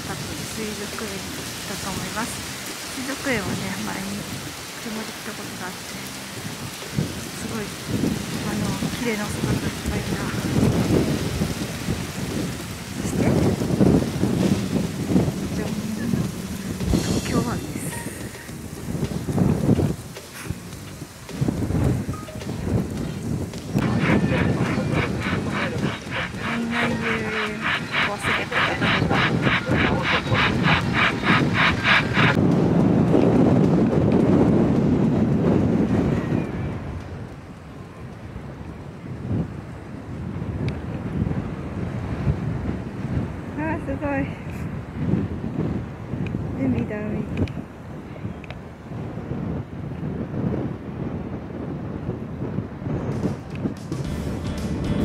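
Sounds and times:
wind buffeting microphone: 0.0 - 55.0
rapid high-pitched pulsing: 23.8 - 32.4.

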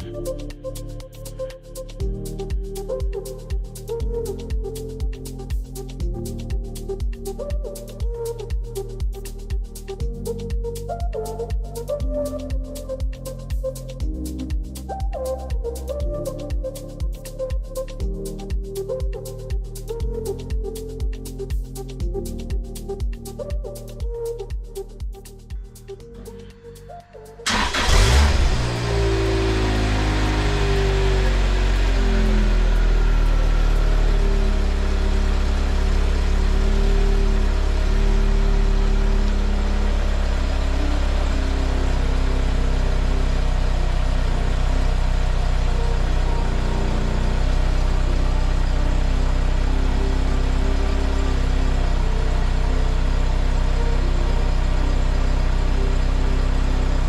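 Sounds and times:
car engine starting and idling: 25.5 - 57.0.

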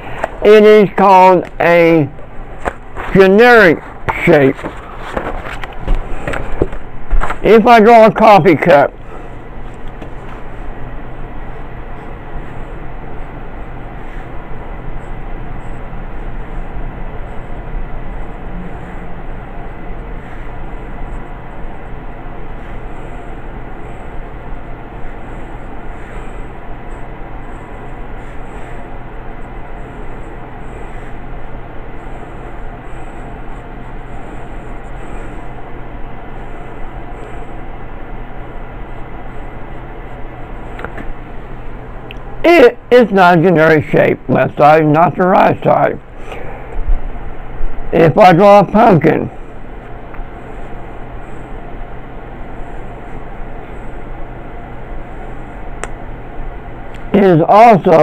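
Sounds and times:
low hum and hiss: 0.0 - 58.0
pencil scratching on paper: 11.5 - 19.3, 20.0 - 35.6.

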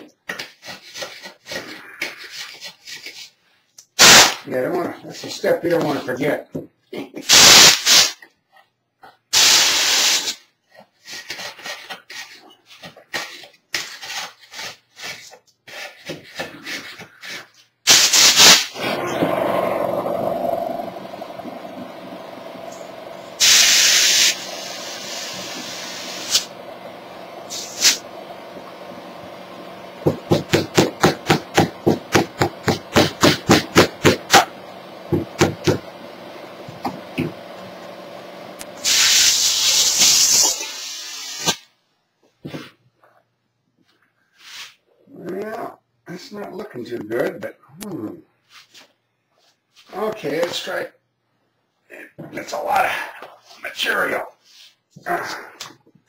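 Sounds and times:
compressed air hissing: 4.0 - 4.4, 7.3 - 8.2, 9.3 - 10.4, 17.9 - 41.7
quick pulses: 17.9 - 36.0
steady motor hum: 18.8 - 38.9.

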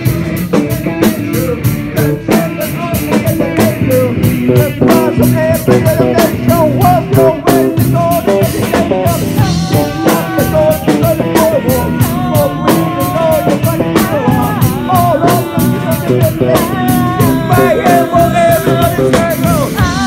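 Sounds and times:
drum kit beat: 0.0 - 20.0
electric guitar: 0.0 - 20.0
live rock band playing: 0.0 - 20.0
person singing: 0.0 - 20.0.

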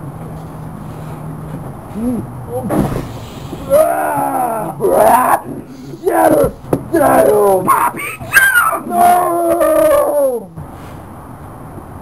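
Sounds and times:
dog-like howl: 7.0 - 10.5.

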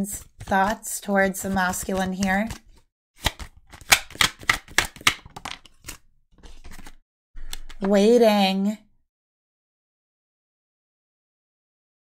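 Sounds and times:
cards being shuffled: 0.1 - 7.9.

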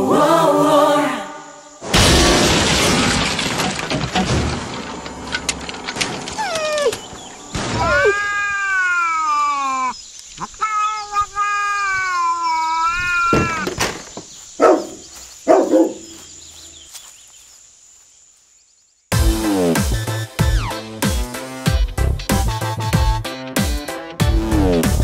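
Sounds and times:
animal making wavering calls: 7.8 - 13.4.

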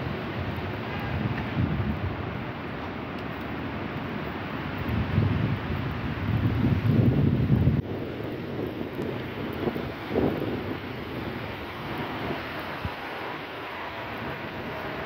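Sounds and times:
city street traffic rumble: 0.0 - 15.0.

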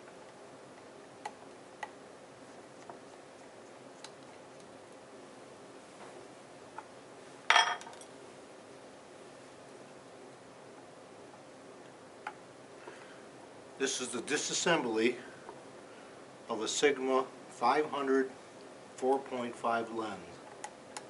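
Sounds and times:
metal ring clinking on wooden bench: 7.5 - 8.1.

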